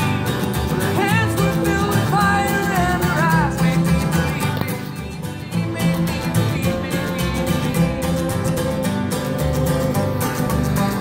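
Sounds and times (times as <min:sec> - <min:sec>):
acoustic guitar strumming: 0:00.0 - 0:11.0
banjo: 0:00.0 - 0:11.0
upright bass: 0:00.0 - 0:11.0.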